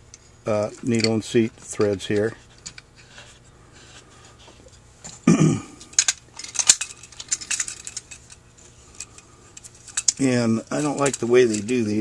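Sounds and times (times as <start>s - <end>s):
metal parts clinking: 0.6s - 3.3s, 5.8s - 12.0s.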